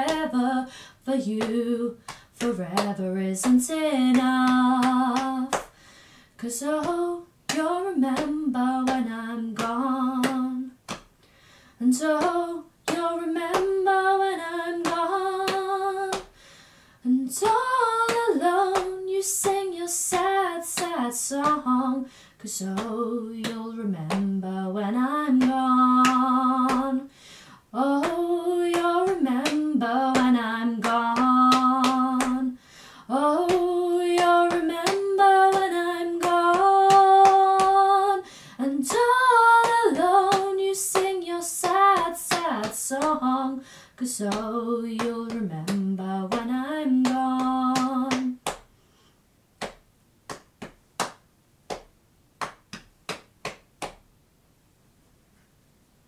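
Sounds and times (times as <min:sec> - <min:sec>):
woman singing: 0:00.0 - 0:05.8, 0:06.4 - 0:10.9, 0:11.8 - 0:16.4, 0:17.0 - 0:48.5.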